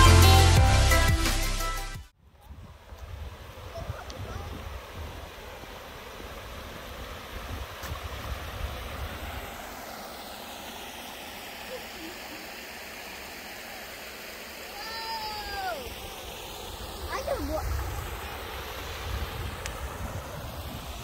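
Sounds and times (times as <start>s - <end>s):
wind buffeting microphone: 2.2s - 9.6s, 15.4s - 21.0s
water rushing over weir: 2.5s - 21.0s.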